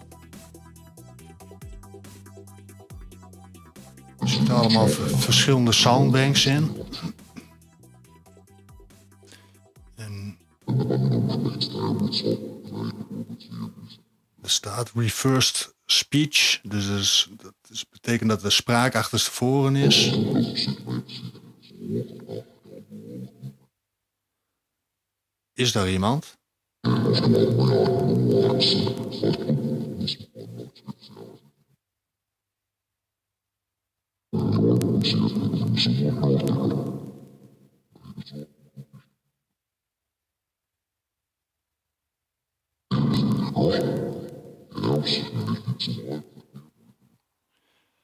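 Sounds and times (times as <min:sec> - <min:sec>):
garbled backwards voice snatches: 0:04.2 - 0:07.6, 0:10.0 - 0:13.9, 0:19.5 - 0:23.2, 0:26.9 - 0:31.2, 0:34.4 - 0:37.2, 0:42.9 - 0:46.2.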